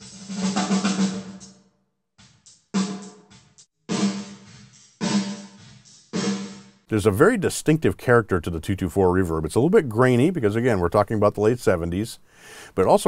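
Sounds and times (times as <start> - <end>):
snare drum hits with reverb: 2.8 - 5.6, 6.2 - 6.7.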